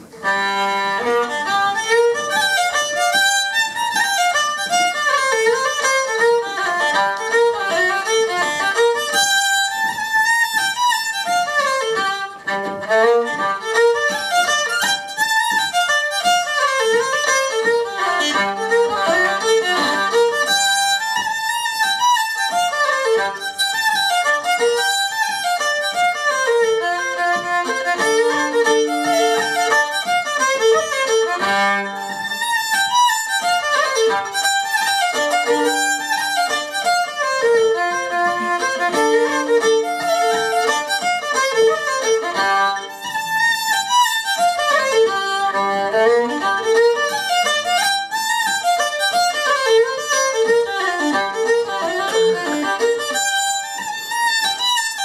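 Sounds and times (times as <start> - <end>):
fiddle playing a fast reel: 0.0 - 55.0.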